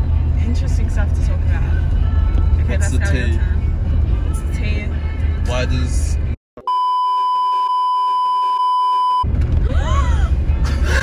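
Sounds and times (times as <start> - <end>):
car cabin road noise: 0.0 - 6.4, 9.2 - 11.0
high-pitched bleep tone: 6.6 - 9.3
people laughing: 9.6 - 11.0.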